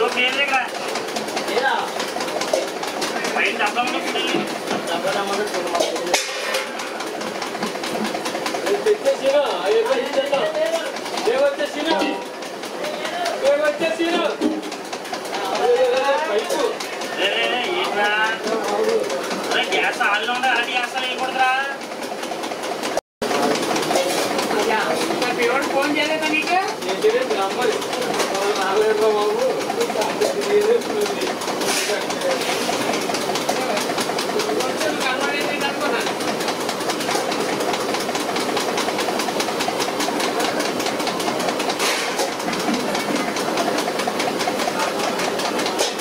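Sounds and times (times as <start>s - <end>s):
busy background noise: 0.0s - 46.0s
machine clattering: 0.0s - 46.0s.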